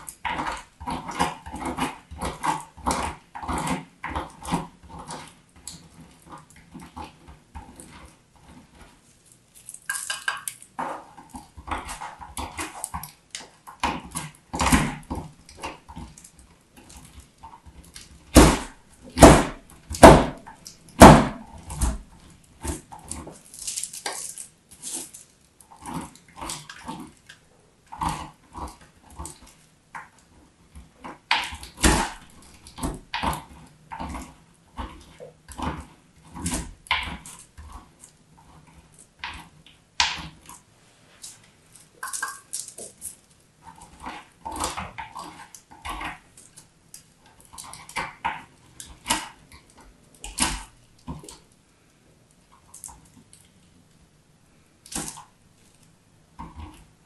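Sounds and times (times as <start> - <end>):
bar soap crunching and cracking: 0.0 - 51.6, 54.8 - 56.9.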